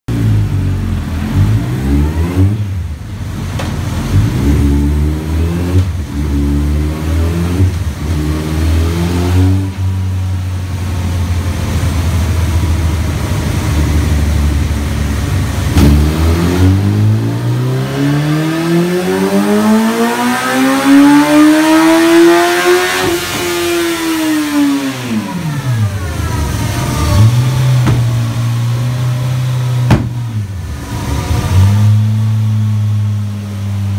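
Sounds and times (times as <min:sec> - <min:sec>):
motorcycle engine revving: 0:04.0 - 0:10.4, 0:12.9 - 0:33.9.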